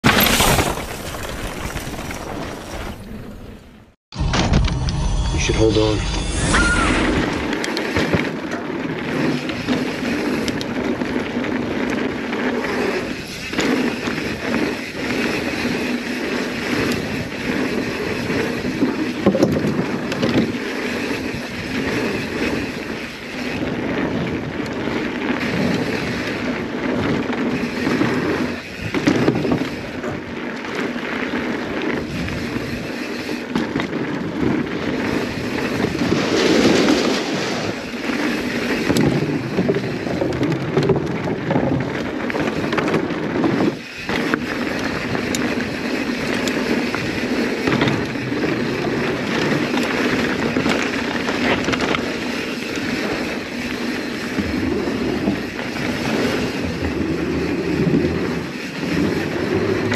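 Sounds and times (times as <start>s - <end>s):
bike tyres rolling over gravel: 0.0s - 4.9s, 7.0s - 59.9s
wind on microphone: 32.0s - 59.9s.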